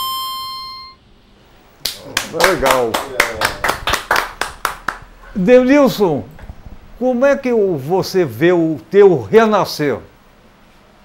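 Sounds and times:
harmonica note: 0.0s - 1.0s
group clapping in rhythm: 1.8s - 5.2s.

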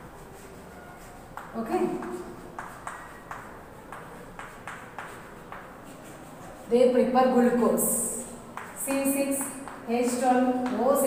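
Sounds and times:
chalk tapping on blackboard: 0.0s - 6.8s, 8.2s - 11.0s.

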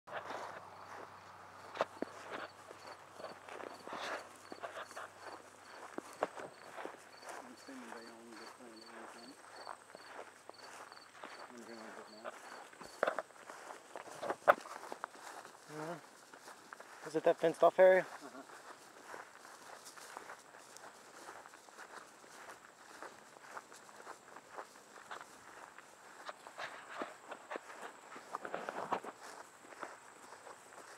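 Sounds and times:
footsteps in short grass: 0.1s - 30.9s.

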